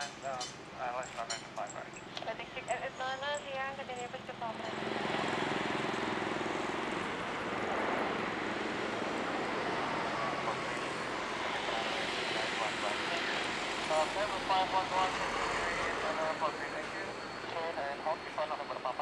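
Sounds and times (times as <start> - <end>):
jet airliner engines running: 0.0 - 19.0.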